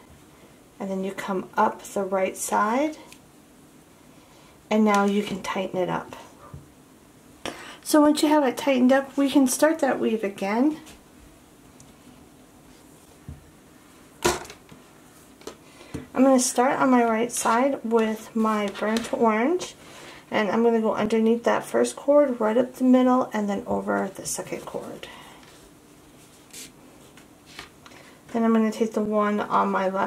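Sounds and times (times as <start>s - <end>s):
faint room hiss: 0.0s - 30.0s.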